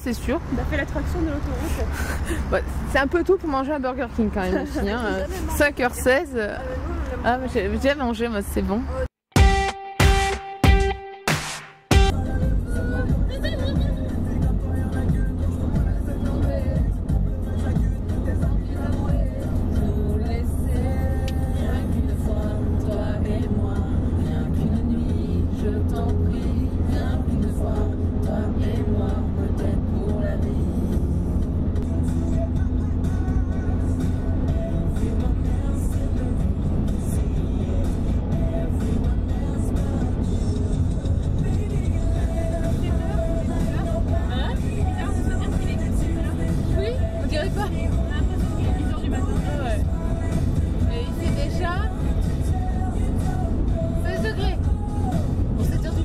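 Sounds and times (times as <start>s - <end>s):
women talking: 0.0s - 9.0s, 42.7s - 49.9s, 50.8s - 52.0s, 54.0s - 54.6s, 55.6s - 56.0s
car cabin road and engine rumble: 0.0s - 9.3s, 12.0s - 56.0s
music: 9.3s - 56.0s.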